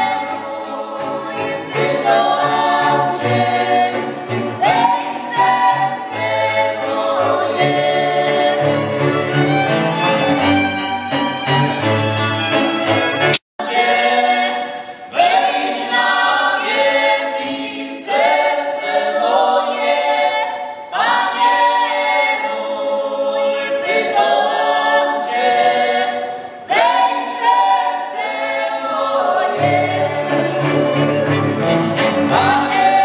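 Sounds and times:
group singing unaccompanied: 0:00.0 - 0:09.4, 0:13.6 - 0:33.0
fiddles and folk cello: 0:00.0 - 0:13.4, 0:28.5 - 0:33.0.

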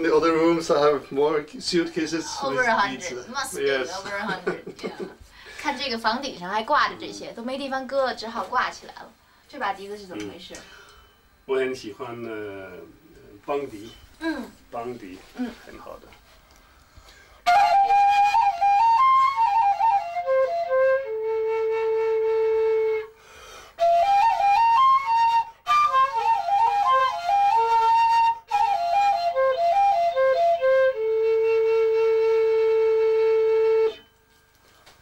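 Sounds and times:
bamboo flute melody: 0:17.4 - 0:23.2, 0:23.8 - 0:34.5.

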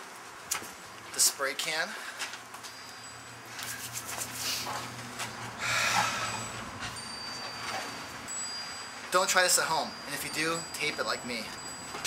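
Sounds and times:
faint wind chimes ringing: 0:01.1 - 0:12.0.

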